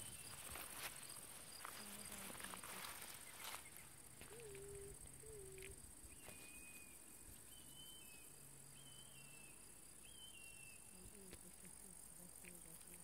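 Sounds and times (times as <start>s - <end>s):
insects chirring: 0.0s - 13.0s.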